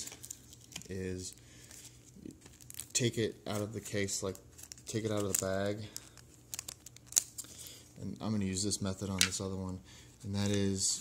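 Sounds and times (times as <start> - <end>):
plastic sleeve crinkling: 0.0 - 9.6.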